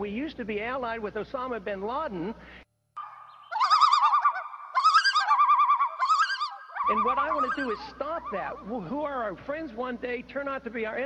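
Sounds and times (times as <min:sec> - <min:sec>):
bird-like warbling whistle: 0:03.0 - 0:08.8.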